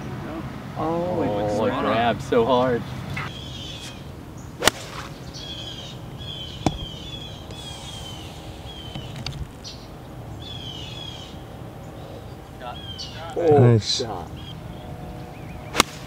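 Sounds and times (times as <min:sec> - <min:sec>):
bird chirping: 0:02.8 - 0:13.4, 0:14.2 - 0:15.8.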